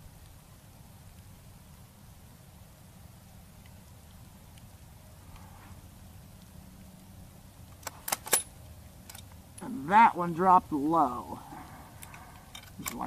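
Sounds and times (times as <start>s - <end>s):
rifle bolt metallic clicks: 7.8s - 9.4s, 12.0s - 13.0s.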